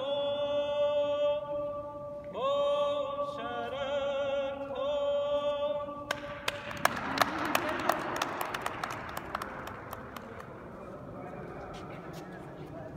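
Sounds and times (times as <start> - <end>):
hand claps echoing: 6.1 - 10.8.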